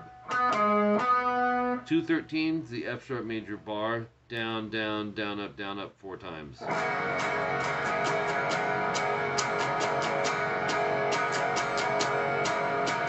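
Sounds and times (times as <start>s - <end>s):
electric guitar strumming chords: 0.0s - 2.2s, 6.6s - 13.0s.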